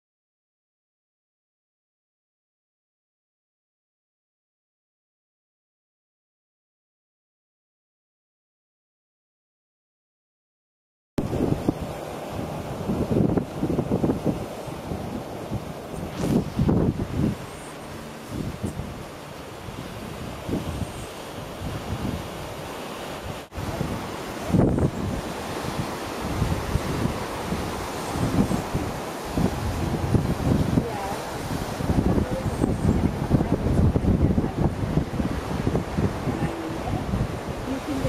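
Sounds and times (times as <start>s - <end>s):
wind buffeting microphone: 11.2s - 38.0s.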